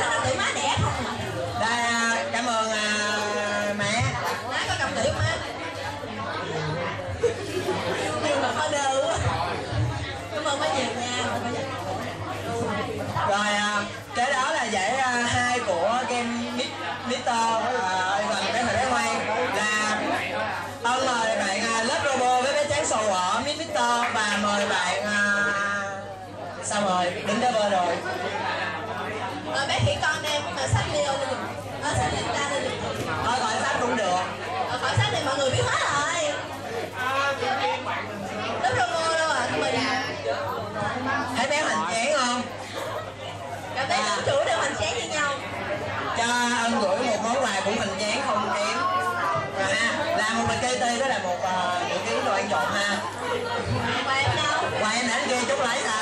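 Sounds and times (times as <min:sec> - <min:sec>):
overlapping voices chatter: 0:00.0 - 0:56.0.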